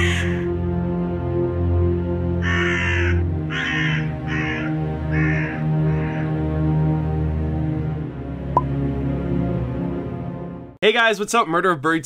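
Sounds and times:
crow cawing: 0.0 - 0.5, 2.4 - 6.5.

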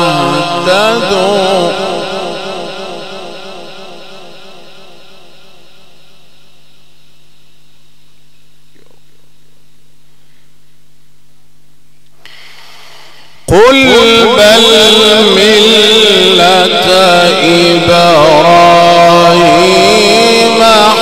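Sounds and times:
amplified voice over loudspeaker: 0.0 - 5.8, 12.3 - 21.0
sound system hum and hiss: 3.3 - 13.8.

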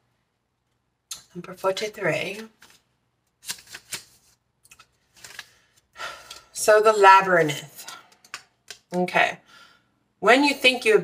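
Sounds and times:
pages flipping: 2.2 - 5.9.

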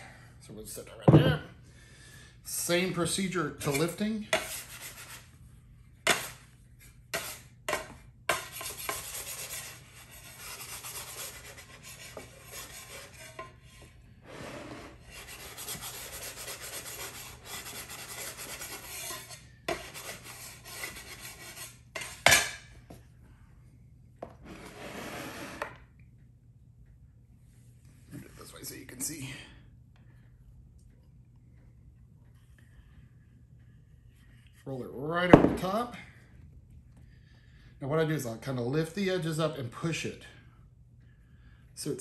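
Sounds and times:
metal scraper scraping dough: 3.6 - 5.3, 6.1 - 6.4, 7.1 - 13.6, 14.9 - 22.3.

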